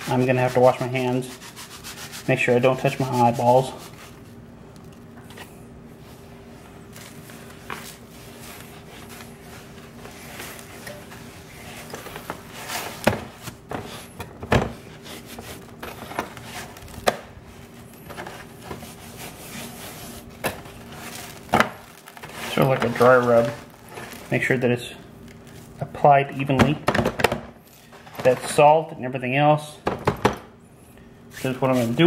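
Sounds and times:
gritty scraping of rub on meat: 0.0 - 5.1.

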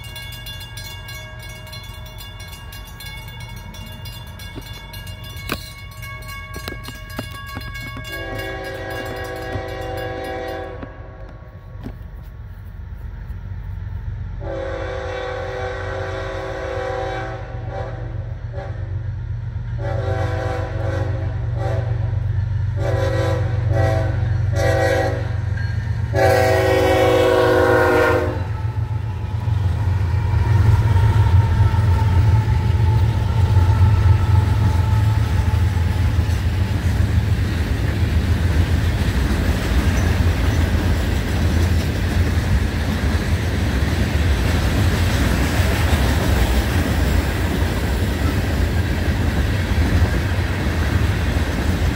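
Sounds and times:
crossing bell ringing: 0.0 - 11.0, 25.5 - 26.1
train rumble: 0.0 - 51.9
locomotive horn blasts: 7.9 - 11.4, 14.4 - 19.0, 19.8 - 22.2, 22.8 - 25.5, 26.1 - 29.1.

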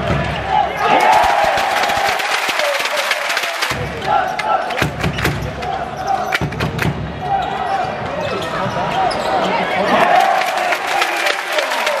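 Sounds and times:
voices in arena hall: 0.0 - 12.0.

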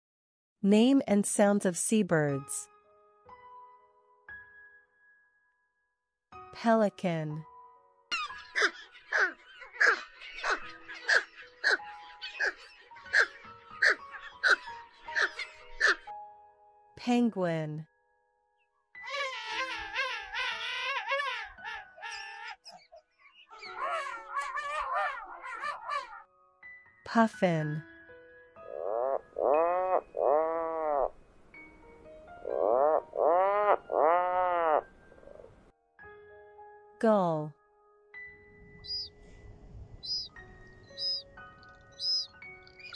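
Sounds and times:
soft background music: 0.6 - 42.9
puffin calling: 8.1 - 16.1, 21.3 - 26.2, 28.7 - 31.2, 32.4 - 35.5, 38.9 - 39.2, 40.0 - 40.3, 41.0 - 42.9
pelican harsh calls: 8.5 - 11.8, 12.4 - 14.6, 15.2 - 16.1, 32.4 - 35.5.

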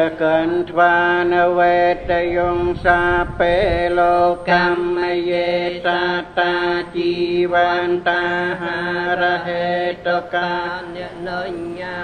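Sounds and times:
monk chanting into a microphone: 0.0 - 12.0.

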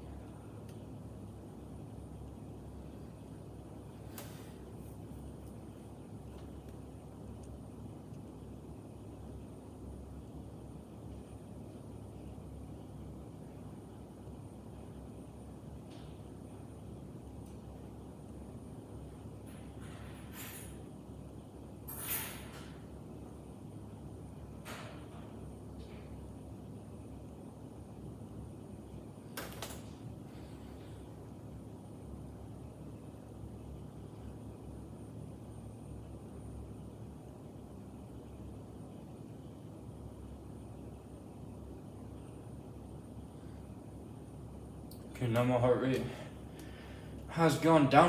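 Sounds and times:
faint low hum: 0.0 - 48.0.

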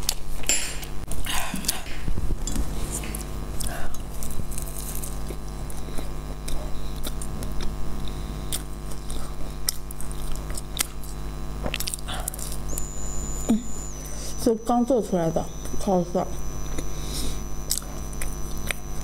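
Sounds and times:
electrical hum: 0.0 - 19.0
chewing crunchy flatbread: 1.1 - 12.8, 16.4 - 19.0.

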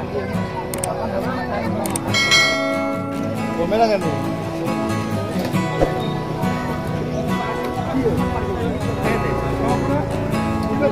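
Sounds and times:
crowd chatter: 0.0 - 10.9
bright bell chime: 2.1 - 3.3.

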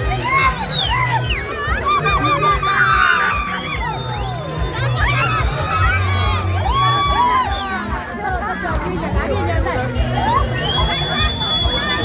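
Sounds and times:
crowd shouting and chanting: 0.0 - 12.0.

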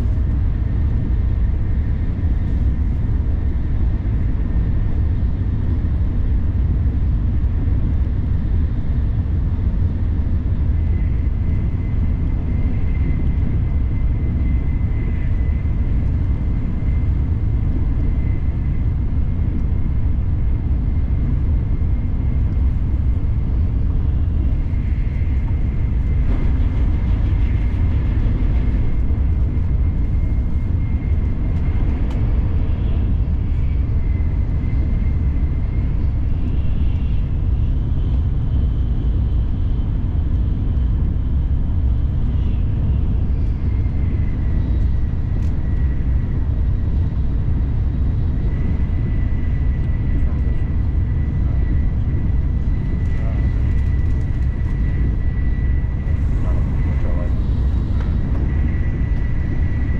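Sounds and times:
train low rumble: 0.0 - 59.9
faint high whine: 9.2 - 59.9.

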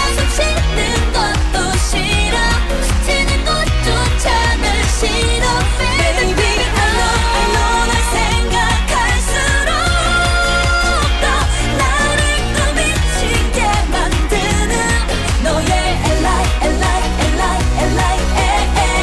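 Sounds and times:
bass-heavy beat: 0.0 - 19.0
women singing: 0.0 - 19.0.

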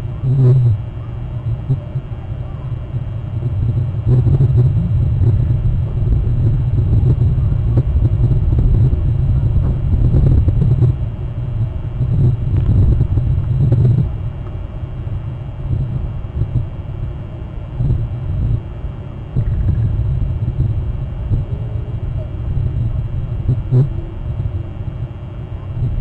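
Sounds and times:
loud low rumble: 0.0 - 26.0.

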